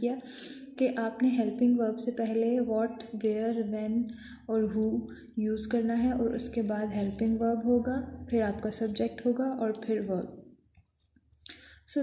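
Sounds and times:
woman speaking: 0.0s - 10.5s, 11.8s - 12.0s.

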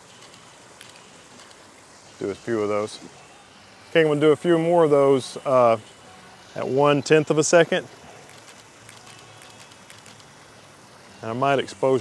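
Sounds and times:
fountain water splashing: 0.0s - 12.0s.

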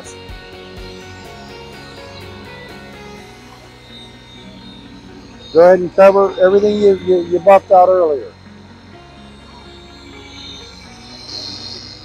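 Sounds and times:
background music: 0.0s - 12.0s
polisher running: 0.4s - 12.0s.

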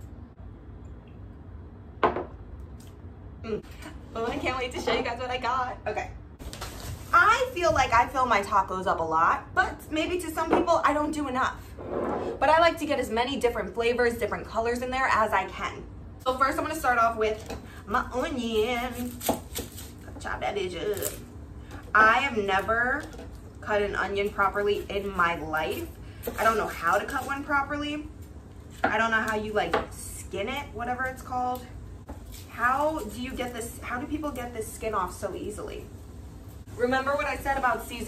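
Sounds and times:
wine glass knocking on counter: 2.0s - 2.3s
knife slicing onion: 18.6s - 20.2s.

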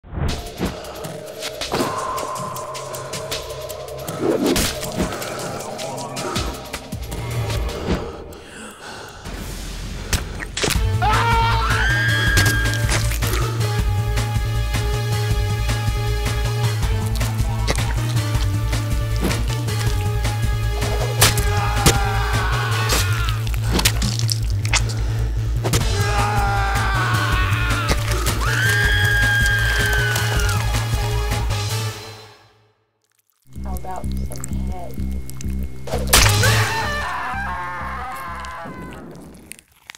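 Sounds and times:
low hum: 0.0s - 10.1s, 33.5s - 37.8s
trailer music with bass beat: 0.1s - 8.5s, 9.1s - 32.6s
person gasping: 7.7s - 9.4s
woman screaming: 11.0s - 12.8s, 21.4s - 23.4s, 26.0s - 30.7s, 36.4s - 39.2s.

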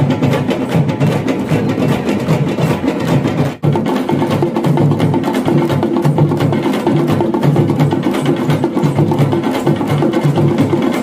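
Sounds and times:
frame drums beaten with sticks: 0.0s - 11.0s.

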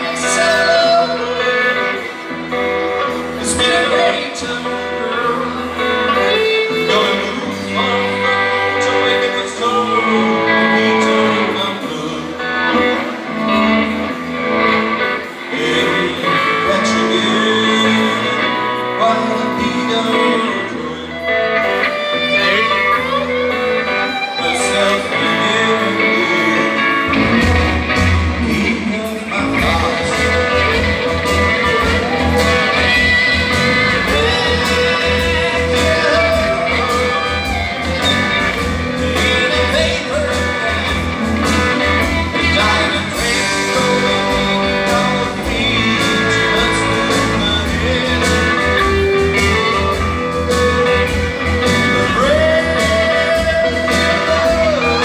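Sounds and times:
bass guitar: 0.0s - 55.0s
drums: 0.0s - 55.0s
electric and acoustic guitars: 0.0s - 55.0s.

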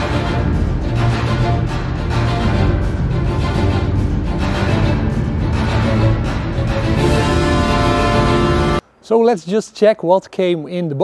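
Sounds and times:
background music with sustained chords: 0.0s - 9.0s.

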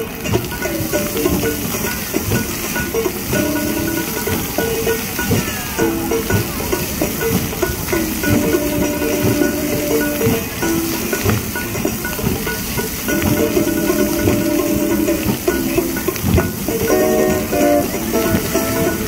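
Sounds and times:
fountain water jets splashing: 0.0s - 19.0s
slow melody of long held notes: 0.0s - 19.0s.

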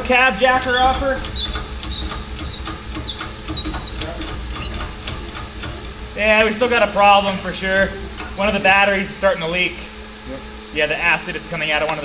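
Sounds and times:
steady low rumble: 0.0s - 12.0s
pump lever squeaks and clicks: 0.6s - 6.1s, 7.3s - 8.4s.

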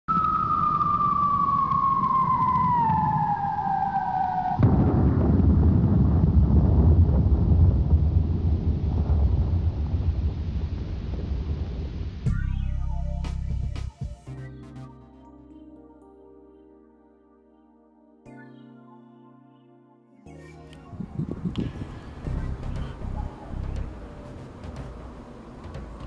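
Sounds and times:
whistle falling in pitch: 0.1s - 4.6s
low rumble: 0.2s - 13.8s, 20.9s - 26.0s
boom with deep rumble: 4.6s - 12.5s, 21.2s - 26.0s.

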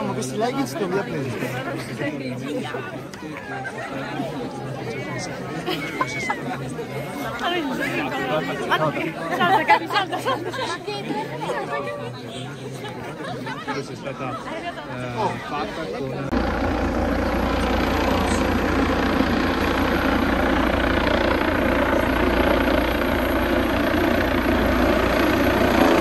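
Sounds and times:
crowd of students chattering: 0.0s - 26.0s
steady low hum: 16.3s - 26.0s.

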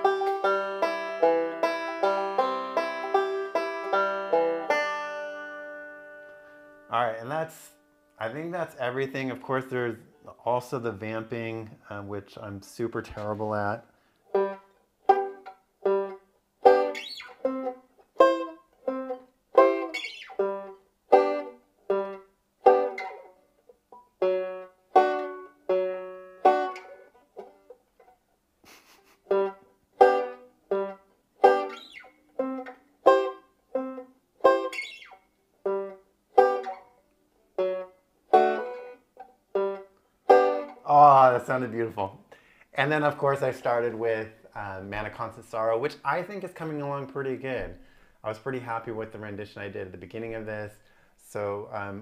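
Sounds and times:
banjo chords: 0.0s - 52.0s.

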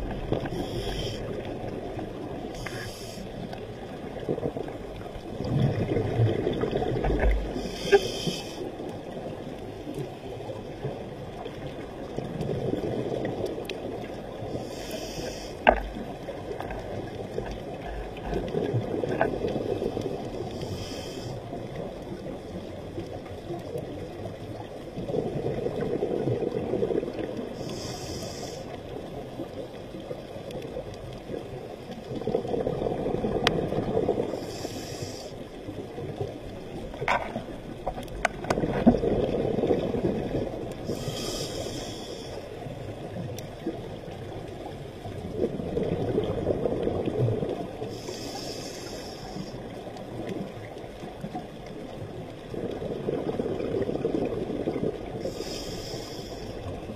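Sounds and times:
exhaled bubbles rumbling: 0.0s - 48.6s, 49.4s - 55.7s
regulator inhale hiss: 0.4s - 1.4s, 2.5s - 3.5s, 7.6s - 8.7s, 14.5s - 15.8s, 20.4s - 21.5s, 27.6s - 28.8s, 34.3s - 35.5s, 40.8s - 42.6s, 47.8s - 49.7s, 55.2s - 56.8s.

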